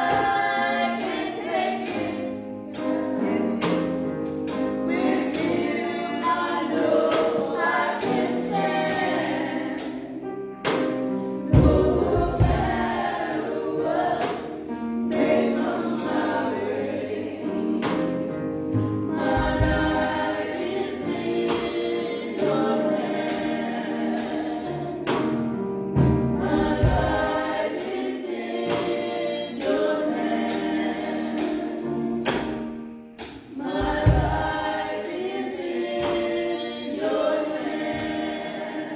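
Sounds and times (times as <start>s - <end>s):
women singing gospel: 0.0s - 25.5s, 26.2s - 38.9s.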